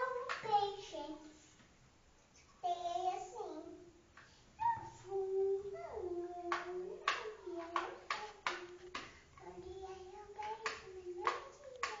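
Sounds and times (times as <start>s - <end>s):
sharp hand taps: 10.4s - 12.0s.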